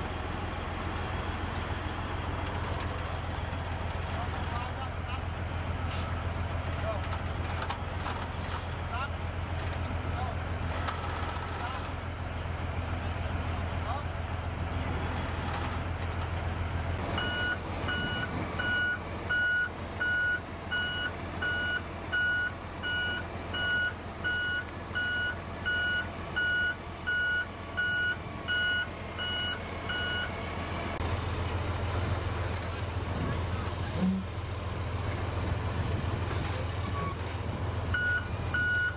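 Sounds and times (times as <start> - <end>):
heavy diesel engine running: 0.0 - 38.9
backup alarm beeping: 17.2 - 30.3.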